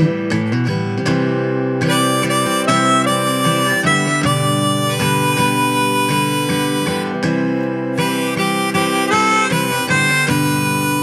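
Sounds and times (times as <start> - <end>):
strummed acoustic guitar: 0.0 - 11.0
harmonica melody: 1.8 - 11.0.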